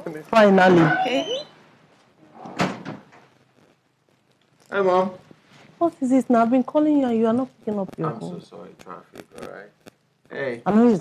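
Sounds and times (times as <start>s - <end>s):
door shutting: 2.4s - 3.2s.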